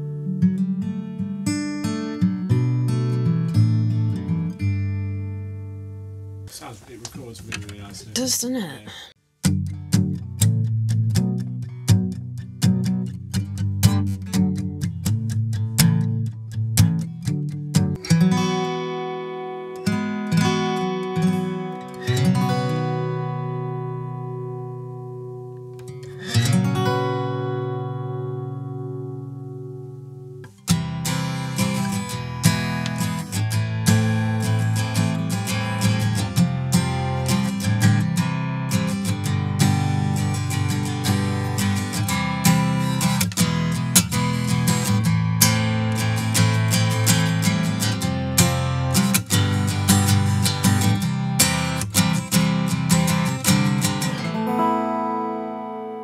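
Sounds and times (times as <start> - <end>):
acoustic guitar strumming chords: 0.0 - 7.3, 9.4 - 56.0.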